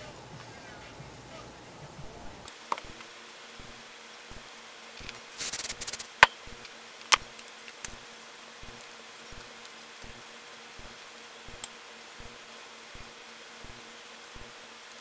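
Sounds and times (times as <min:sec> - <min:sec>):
faint electrical buzz: 0:00.0 - 0:15.0
hair rustling: 0:05.0 - 0:06.2.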